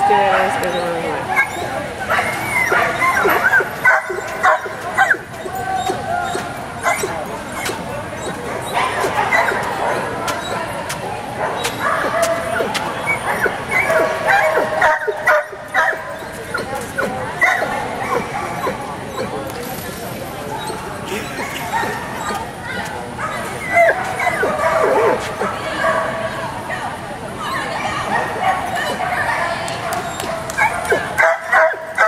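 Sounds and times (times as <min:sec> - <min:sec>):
people's voices: 0:00.0 - 0:32.0
dog barking and yipping: 0:00.3 - 0:10.8, 0:11.4 - 0:19.4, 0:23.2 - 0:26.0, 0:27.9 - 0:32.0.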